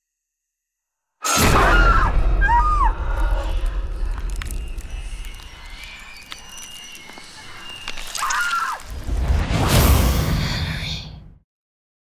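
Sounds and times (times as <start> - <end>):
deep rumble: 2.1 - 6.6.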